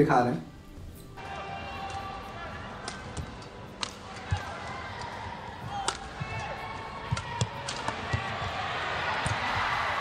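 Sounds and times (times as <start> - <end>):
arena noise: 0.8 - 10.0
rackets hitting shuttlecock: 1.2 - 9.8.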